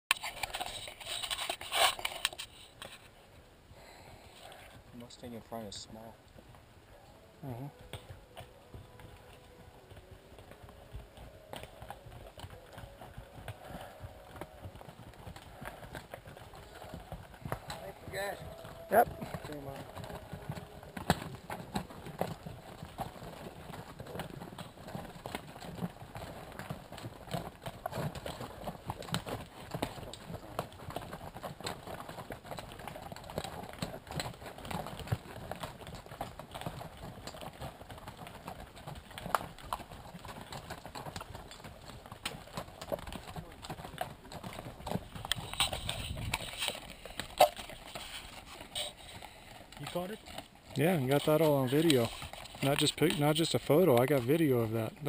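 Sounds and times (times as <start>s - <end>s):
hooves clopping on rocky trail: 0.1s - 55.0s.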